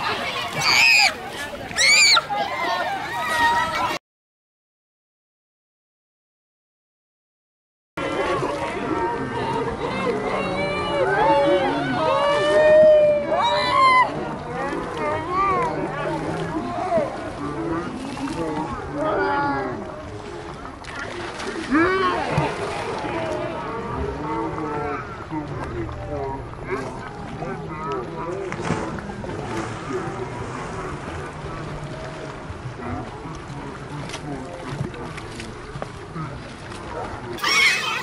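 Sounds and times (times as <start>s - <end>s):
children shouting and chattering: 0.0s - 4.0s, 8.1s - 17.2s, 37.3s - 38.0s
water sloshing and splashing: 0.0s - 4.0s, 13.3s - 38.0s.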